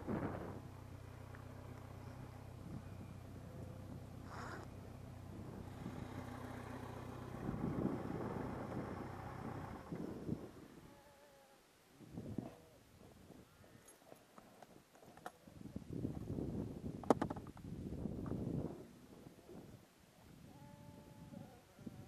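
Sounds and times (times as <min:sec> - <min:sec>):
motorcycle engine idling: 0:00.0 - 0:10.6.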